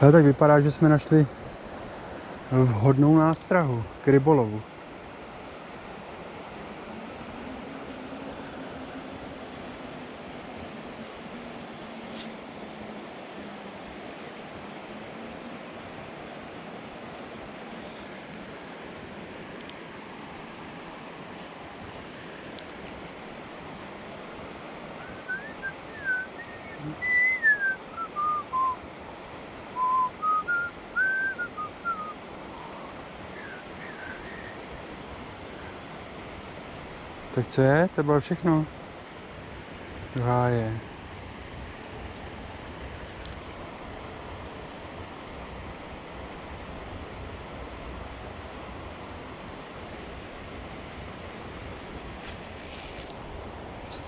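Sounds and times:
river water flowing: 0:00.0 - 0:54.0
person whistling a tune: 0:25.1 - 0:28.8, 0:29.8 - 0:32.2.

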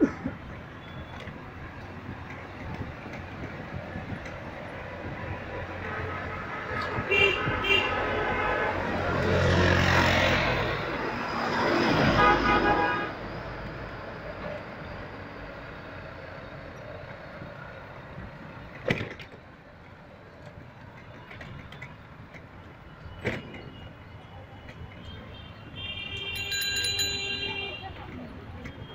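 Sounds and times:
traffic hum: 0:00.0 - 0:28.9
vehicle horns honking: 0:05.8 - 0:08.9, 0:12.0 - 0:13.2, 0:25.0 - 0:28.9.

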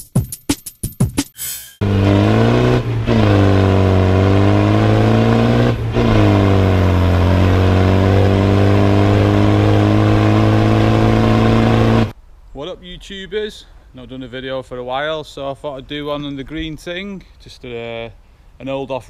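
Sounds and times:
diesel engine driving: 0:01.8 - 0:12.1.

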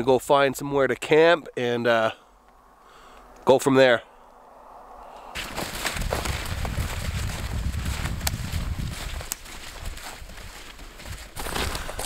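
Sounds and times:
low rumble on microphone: 0:04.0 - 0:10.3
footsteps crunching in snow: 0:05.3 - 0:12.0.

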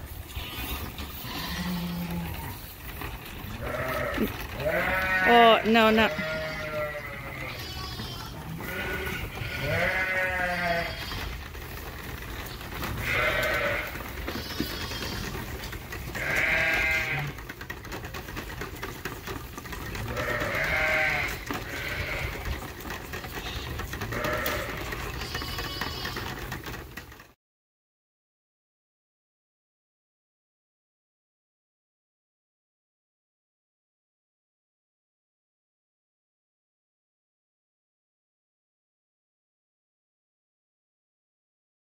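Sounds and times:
sheep and lambs bleating: 0:00.1 - 0:17.6, 0:19.7 - 0:26.7.

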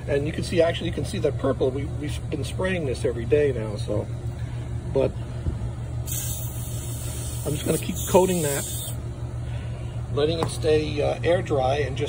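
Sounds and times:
steady low hum: 0:00.0 - 0:12.0
aerosol spray hissing: 0:06.0 - 0:09.0.

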